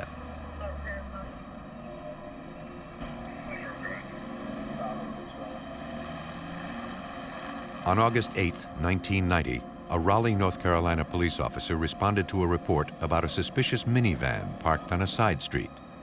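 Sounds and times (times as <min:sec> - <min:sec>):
steady hum of vehicles: 0:00.0 - 0:16.0.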